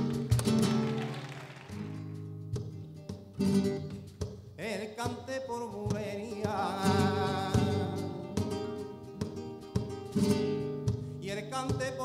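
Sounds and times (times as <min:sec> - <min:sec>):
flamenco guitars strumming: 0:00.0 - 0:12.0.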